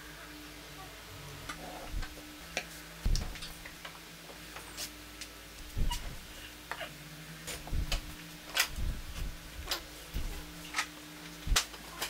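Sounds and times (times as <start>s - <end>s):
heavy knocks on wooden workbench: 3.0s - 3.6s.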